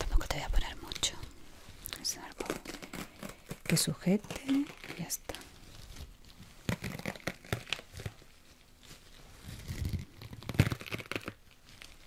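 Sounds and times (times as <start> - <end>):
elastic bandage crackling rustles: 0.7 - 12.0.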